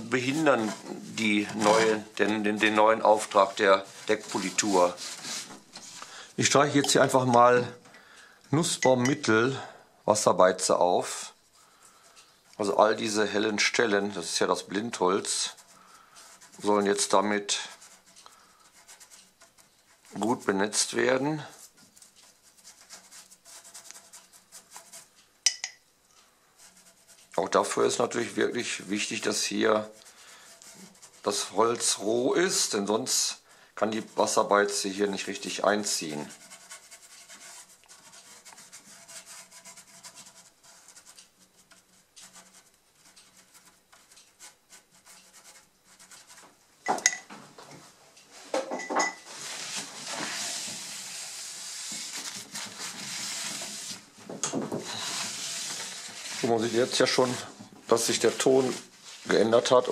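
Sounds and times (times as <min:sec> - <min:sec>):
brush scrubbing wood: 0:00.0 - 0:06.0, 0:12.5 - 0:25.2, 0:26.6 - 0:46.5, 0:49.3 - 0:54.1, 0:54.8 - 0:59.9
paper towel rubbing wood: 0:00.0 - 0:06.0, 0:12.5 - 0:25.2, 0:26.6 - 0:33.2, 0:33.8 - 0:46.5, 0:49.3 - 0:54.1, 0:54.8 - 0:59.9
brush clinking glass jar: 0:06.7 - 0:07.2, 0:25.5 - 0:25.8, 0:46.9 - 0:47.3, 0:48.8 - 0:49.3.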